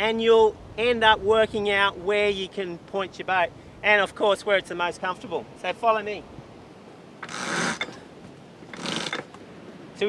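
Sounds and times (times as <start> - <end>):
rope sliding and hissing: 7.2 - 9.4.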